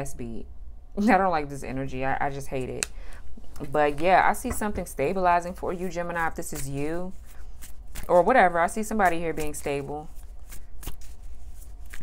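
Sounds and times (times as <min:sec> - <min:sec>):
low steady hum: 0:00.0 - 0:12.0
cards being shuffled: 0:05.8 - 0:12.0.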